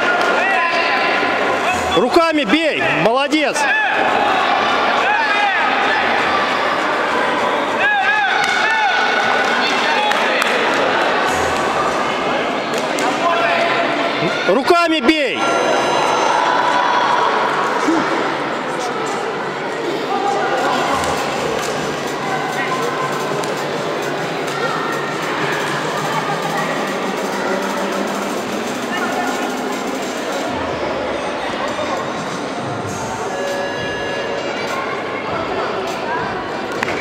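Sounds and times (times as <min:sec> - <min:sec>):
echoing murmur of many voices: 0:00.0 - 0:37.0.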